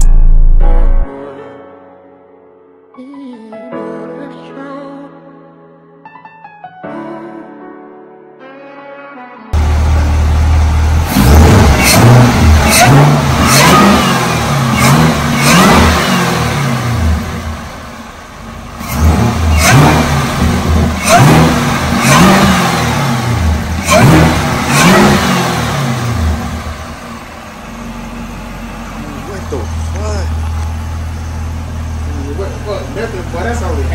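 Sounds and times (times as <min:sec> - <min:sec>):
car engine revving: 0:00.0 - 0:01.1, 0:09.6 - 0:33.9
car engine idling: 0:09.6 - 0:33.9.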